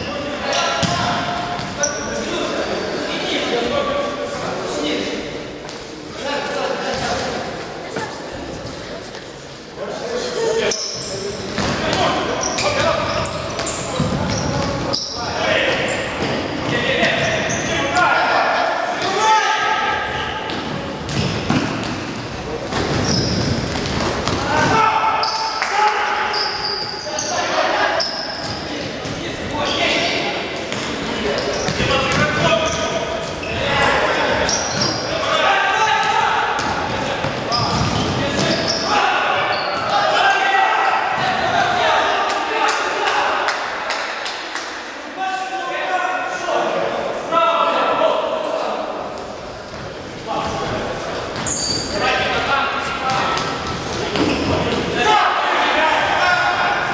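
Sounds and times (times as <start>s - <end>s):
players shouting in echoing hall: 0.0s - 56.9s.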